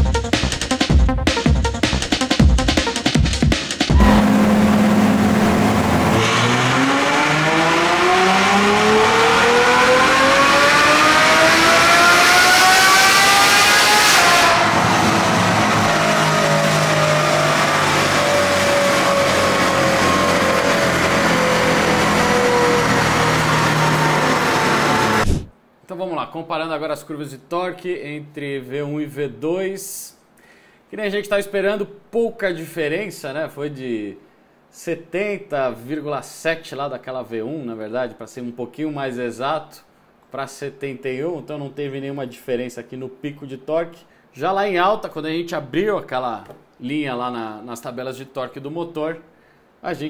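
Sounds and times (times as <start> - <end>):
beat-driven music: 0.0 - 6.5
car engine revving on dynamometer: 3.9 - 25.5.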